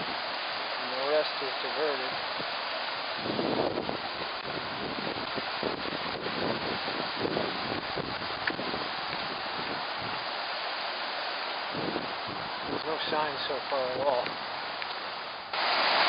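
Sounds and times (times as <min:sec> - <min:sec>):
river water rushing: 0:00.0 - 0:16.0
wind buffeting microphone: 0:02.0 - 0:10.5, 0:11.6 - 0:14.6.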